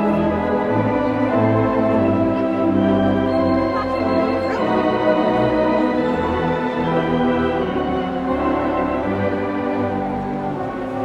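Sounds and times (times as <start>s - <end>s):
sustained organ chords: 0.0s - 11.0s.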